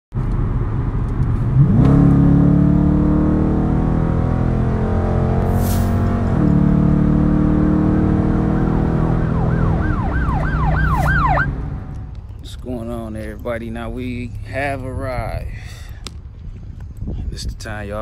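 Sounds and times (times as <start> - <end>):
car engine accelerating hard: 0.3 - 12.0
siren yelping: 8.0 - 11.6.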